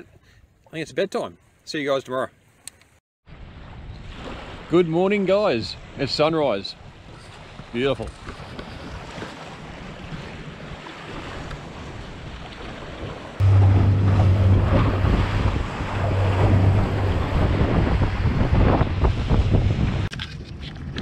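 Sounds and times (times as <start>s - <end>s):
small waves washing on shore: 3.3s - 20.7s
wind on microphone: 6.9s - 21.0s
water rushing past hull: 8.2s - 20.1s
outboard motor hum: 12.6s - 20.1s.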